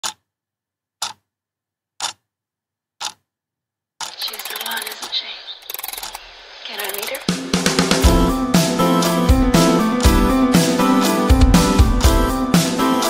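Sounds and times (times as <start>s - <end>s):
voice: 4.1s - 7.5s
busy noise: 4.1s - 11.6s.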